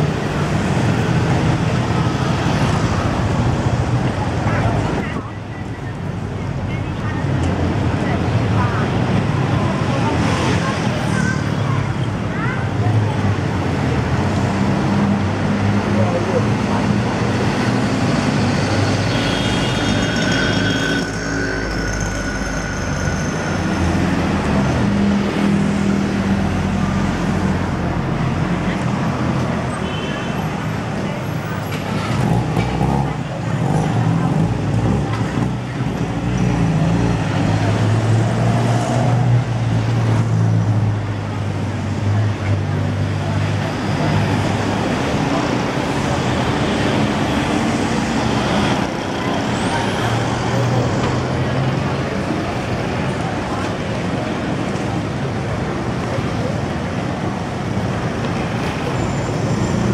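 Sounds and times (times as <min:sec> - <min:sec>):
people's voices: 0:00.0 - 0:59.9
road noise hum: 0:00.0 - 0:59.9
vehicle engines passing: 0:00.0 - 0:59.9.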